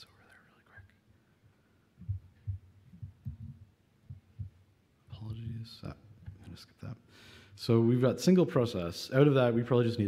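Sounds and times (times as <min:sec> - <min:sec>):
low muffled pulses: 0:02.0 - 0:06.6.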